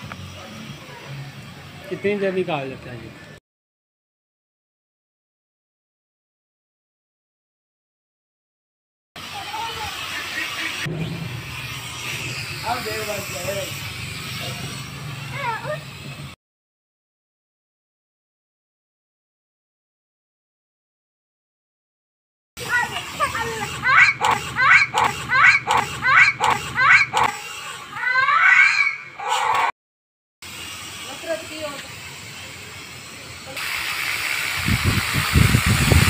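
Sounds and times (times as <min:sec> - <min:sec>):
toy drone propellers buzzing: 0:00.0 - 0:02.3, 0:09.2 - 0:16.4, 0:22.6 - 0:29.7, 0:30.4 - 0:36.0
children shrieking: 0:09.2 - 0:10.8, 0:15.2 - 0:15.9, 0:22.6 - 0:29.7.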